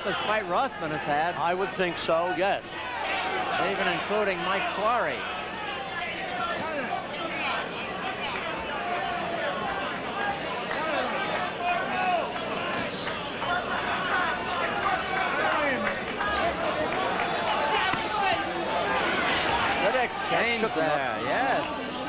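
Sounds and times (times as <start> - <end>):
crowd talking and shouting: 0.0 - 22.0.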